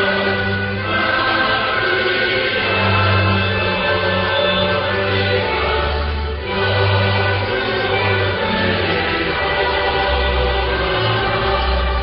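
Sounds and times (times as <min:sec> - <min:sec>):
choir singing anthem: 0:00.0 - 0:12.0.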